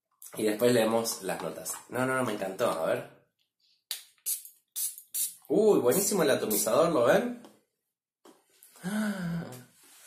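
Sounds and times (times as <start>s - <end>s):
perfume atomizer spray hiss: 4.0s - 5.4s.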